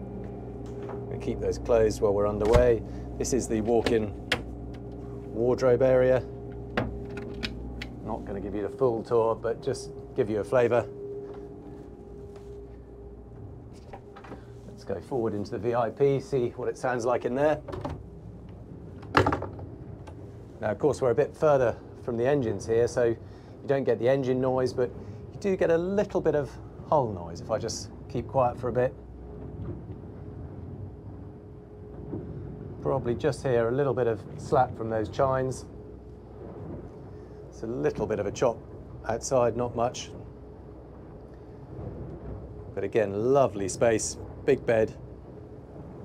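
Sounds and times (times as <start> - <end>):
faint steady tone: 0.0 - 46.0
low hum of boat: 0.0 - 46.0
low steady hull noise: 0.0 - 46.0.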